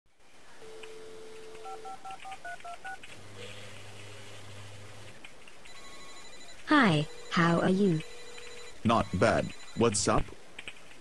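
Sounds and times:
phone ringing: 0.6 - 3.0, 5.7 - 10.2
telephone dial tone: 0.6 - 3.0, 5.7 - 9.8
touch-tone keypad beeps: 0.8 - 3.0, 5.7 - 10.0
low steady buzzing tone: 5.7 - 10.1.

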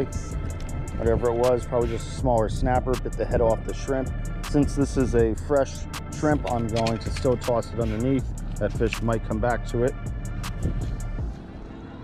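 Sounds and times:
music with low bass line: 0.0 - 11.4
sharp clicks: 6.4 - 7.7.

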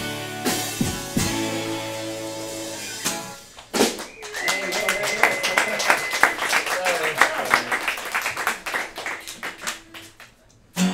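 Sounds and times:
small audience clapping and cheering: 3.5 - 10.6.

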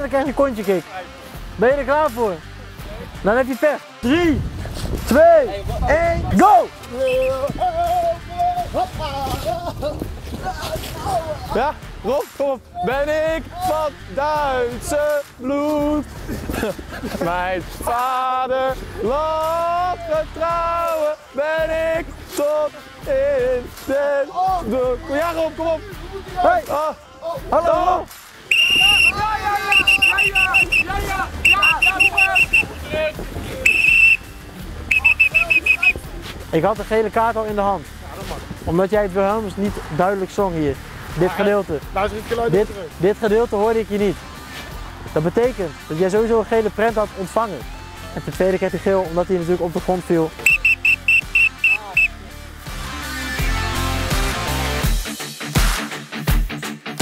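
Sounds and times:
background music: 0.0 - 57.0
referee's whistle blasts: 7.0 - 7.4, 28.5 - 32.7, 33.6 - 36.0, 50.4 - 52.2.

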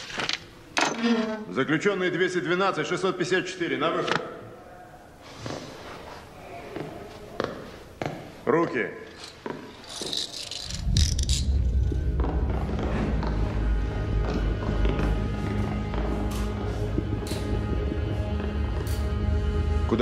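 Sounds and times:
handcuffs ratchet clicking: 9.2 - 11.3
low droning film score music: 10.6 - 20.0.

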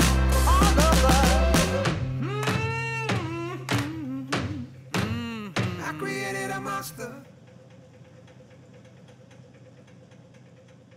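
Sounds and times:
faint low mechanical hum with ticks: 5.6 - 10.9.

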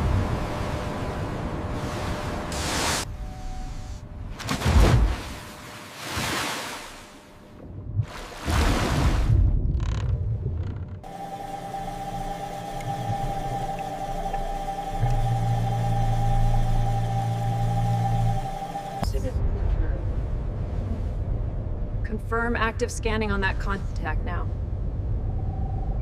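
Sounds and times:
machinery hum with held tone: 0.0 - 4.4, 11.0 - 19.4, 24.6 - 26.0
water churning: 4.5 - 19.0
low rumble: 7.4 - 11.1, 12.7 - 26.0
deep drone: 9.4 - 26.0.

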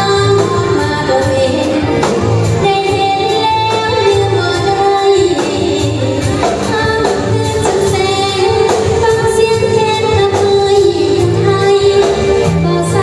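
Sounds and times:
bass: 0.0 - 13.0
steady drum beat: 0.0 - 13.0
woman singing: 0.0 - 13.0.

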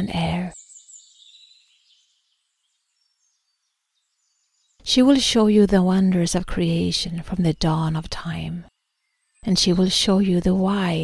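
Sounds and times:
person speaking: 0.0 - 0.5, 9.4 - 11.0.

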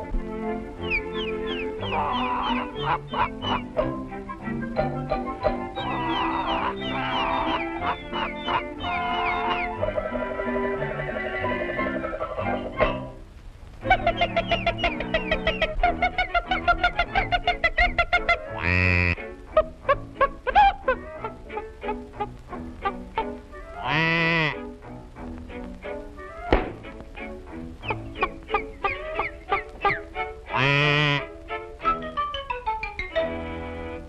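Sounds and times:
bouncy orchestral cartoon music: 0.0 - 13.2, 13.8 - 34.0
wavering honk-like calls: 0.8 - 13.1, 13.8 - 24.7, 27.8 - 31.4.

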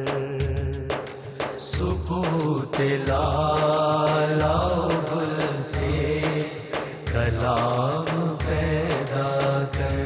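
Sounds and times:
man singing devotional song: 0.0 - 10.0.

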